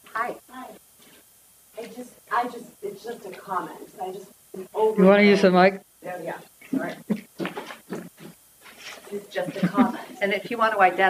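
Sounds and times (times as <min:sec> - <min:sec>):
woman laughing softly: 0:06.8 - 0:10.2.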